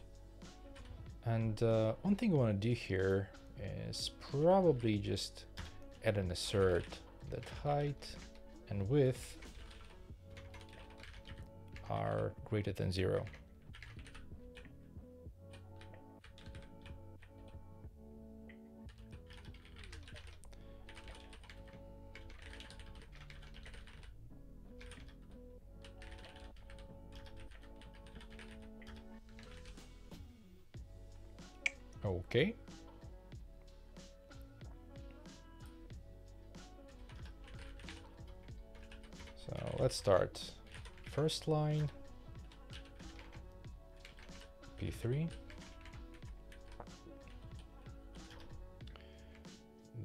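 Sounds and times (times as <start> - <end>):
quiet background music: 0.0 - 50.0
computer keyboard typing: 9.3 - 12.0, 13.2 - 14.7, 15.5 - 17.6, 18.9 - 24.1, 24.8 - 25.2, 25.8 - 29.7, 36.9 - 39.8, 40.6 - 49.5.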